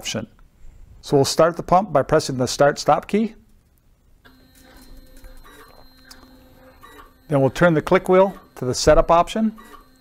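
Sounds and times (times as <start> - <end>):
dosing pump motor whine: 4.3 - 10.0.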